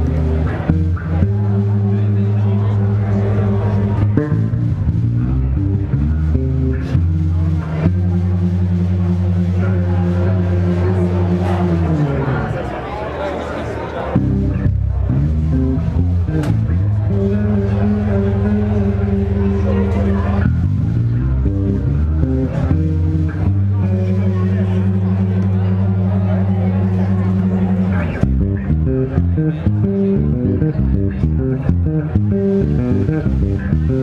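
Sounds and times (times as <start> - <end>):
deep bass notes: 0.0 - 13.2, 14.0 - 34.0.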